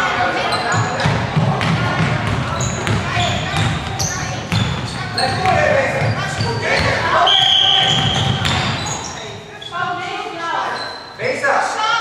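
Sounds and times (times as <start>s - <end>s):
sneakers squeaking: 0.0s - 11.4s
voices calling out: 0.0s - 12.0s
ball bouncing on wooden floor: 0.8s - 7.0s, 7.9s - 8.9s.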